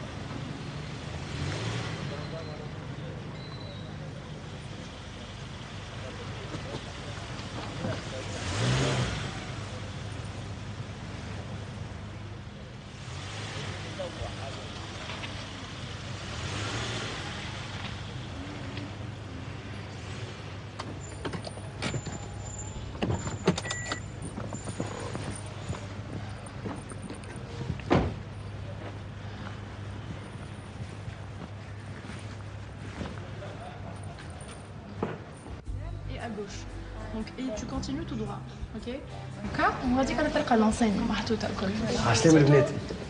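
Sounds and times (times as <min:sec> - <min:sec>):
car engine idling: 0:17.2 - 0:43.0
tyre noise: 0:20.7 - 0:35.8.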